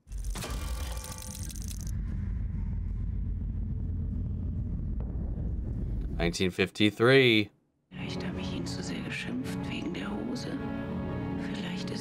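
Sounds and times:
deep steady drone: 0:01.1 - 0:06.2.

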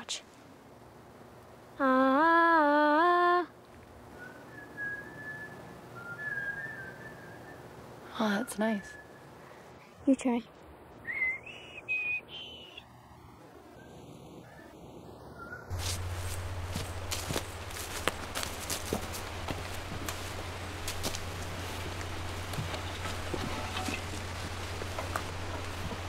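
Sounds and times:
whistled note: 0:04.2 - 0:07.6, 0:11.0 - 0:12.8
low hum: 0:08.9 - 0:26.0
footsteps on dry leaves: 0:15.7 - 0:26.0.

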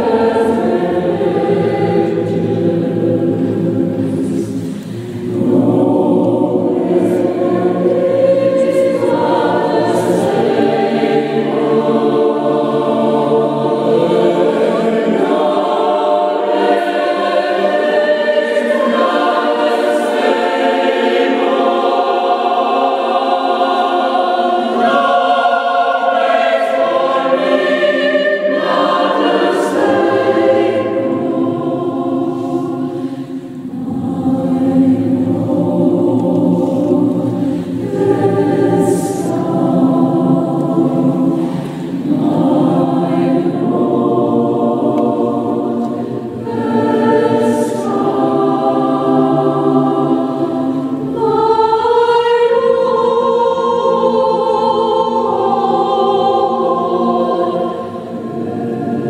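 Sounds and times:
choir singing sacred music: 0:00.0 - 0:59.0.

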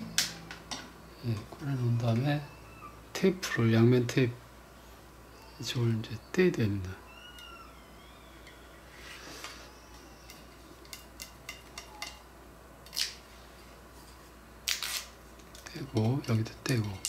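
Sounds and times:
backing liner peeling off tape: 0:14.7 - 0:15.2.

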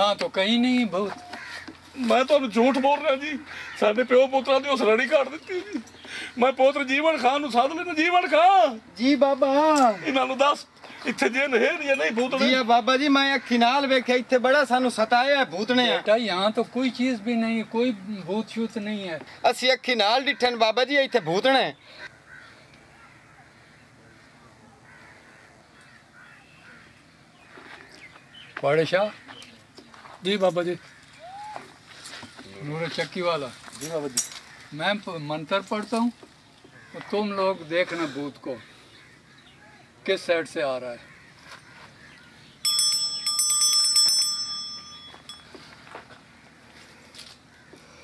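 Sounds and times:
faint bird calls: 0:01.0 - 0:02.0, 0:02.8 - 0:04.1, 0:21.2 - 0:30.0, 0:30.8 - 0:32.8, 0:36.4 - 0:40.0, 0:45.6 - 0:48.0
small bell ringing: 0:42.6 - 0:45.7.

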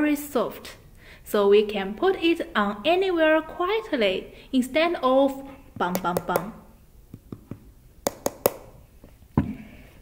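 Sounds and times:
tapping on plastic shell: 0:07.1 - 0:08.7.

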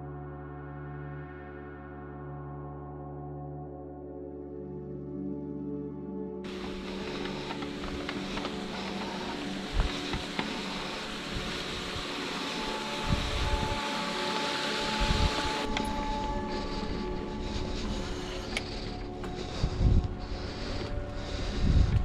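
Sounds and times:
background music sustained tones: 0:00.0 - 0:22.0
wind rushing over microphone: 0:06.5 - 0:22.0.

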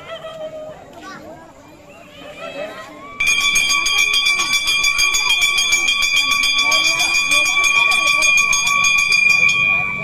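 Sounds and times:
bell ringing continuously: 0:03.2 - 0:10.0.

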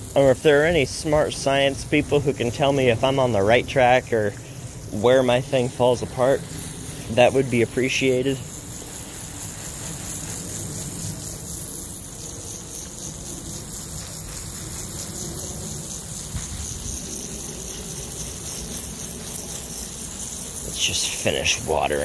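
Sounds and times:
garden hose spraying plants: 0:00.0 - 0:22.0.

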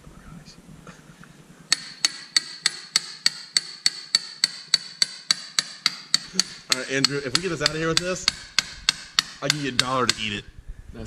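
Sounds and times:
hammer striking steel rod: 0:01.7 - 0:10.4.

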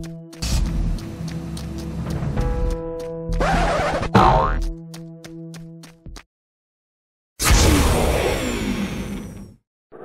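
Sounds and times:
background music with ticking beat: 0:00.0 - 0:06.2
cartoon boing sound effect: 0:04.1 - 0:04.6.

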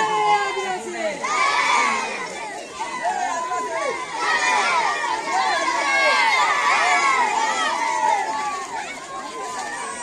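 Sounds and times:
boys shouting together: 0:00.0 - 0:10.0.

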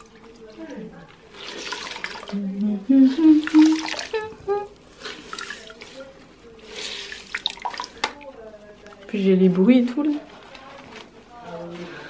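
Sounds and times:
wet cloth wrung out: 0:03.1 - 0:04.3
water dripping into bucket: 0:07.3 - 0:08.2.

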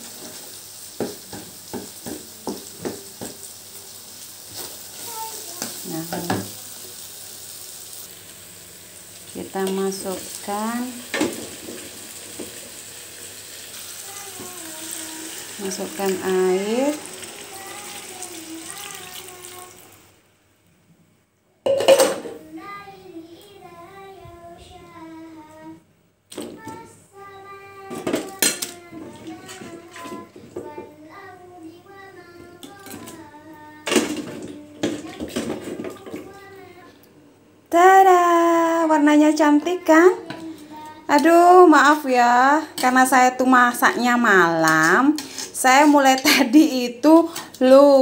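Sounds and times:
water pouring into a wok: 0:11.5 - 0:20.2.

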